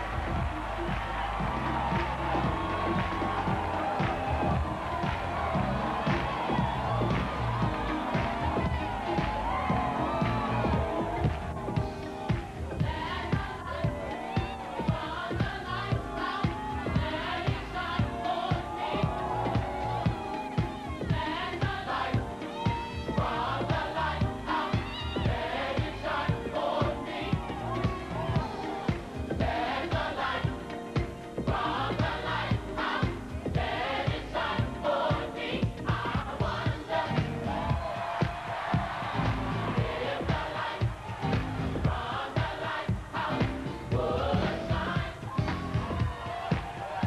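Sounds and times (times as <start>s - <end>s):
band with drum beat: 0.0s - 47.0s
gospel choir singing: 0.0s - 47.0s.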